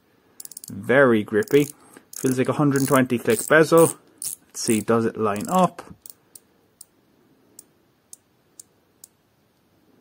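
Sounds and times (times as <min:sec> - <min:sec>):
watch bezel clicking: 0:00.4 - 0:00.7, 0:01.4 - 0:04.8, 0:05.4 - 0:06.9.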